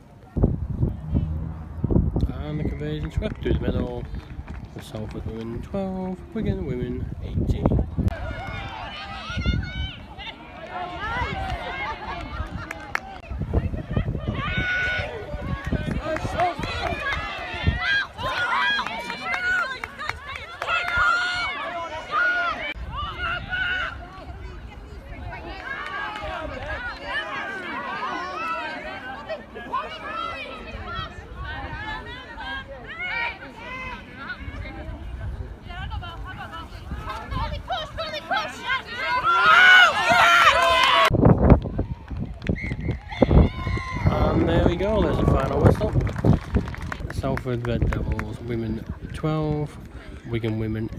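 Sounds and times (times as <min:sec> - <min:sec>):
low rumbling thumps: 0:00.4 - 0:04.9
women shouting and calling: 0:35.7 - 0:41.1.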